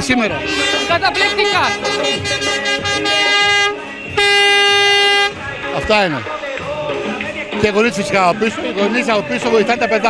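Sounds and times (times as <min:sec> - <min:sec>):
horn blasts: 0:00.4 - 0:05.4.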